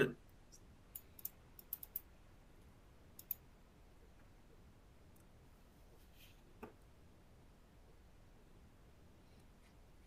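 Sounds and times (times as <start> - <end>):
light irregular clicks: 0.5 - 2.1, 3.1 - 3.5.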